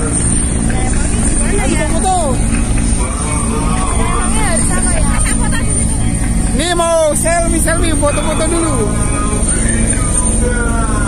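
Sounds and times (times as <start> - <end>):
crowd voices: 0.0 - 11.0
helicopters droning: 0.0 - 11.0.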